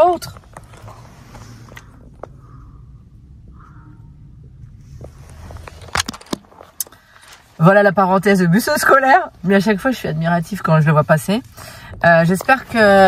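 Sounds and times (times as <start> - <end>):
sharp clicks: 5.7 - 7.6.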